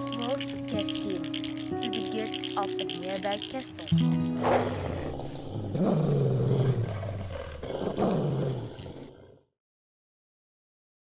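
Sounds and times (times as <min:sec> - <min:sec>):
music bed: 0:00.0 - 0:07.2
animal roars: 0:04.3 - 0:09.6.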